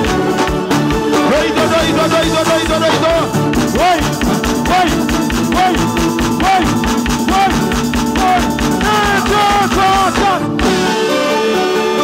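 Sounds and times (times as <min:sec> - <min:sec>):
bass guitar: 0:00.0 - 0:12.0
congas: 0:00.0 - 0:12.0
keyboards: 0:00.0 - 0:12.0
live band playing: 0:00.0 - 0:12.0.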